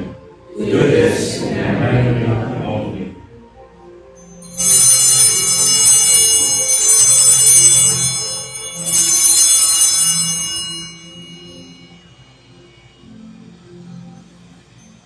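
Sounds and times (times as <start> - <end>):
altar bells ringing: 4.2 - 13.6.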